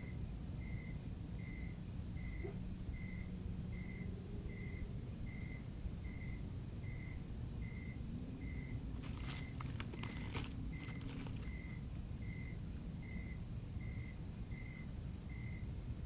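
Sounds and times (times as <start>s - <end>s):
steady low hiss: 0.0s - 16.0s
dry leaves rustling: 8.9s - 11.8s.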